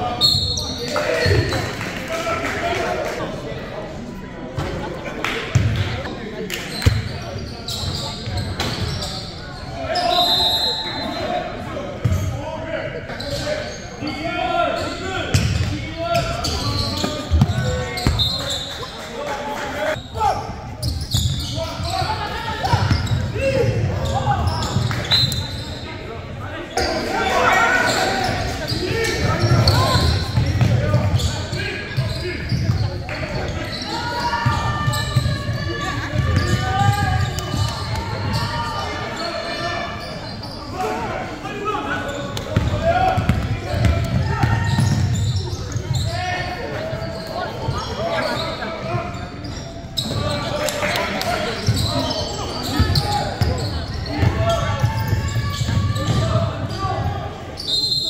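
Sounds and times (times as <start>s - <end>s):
indistinct shouts and chatter: 0.0s - 58.0s.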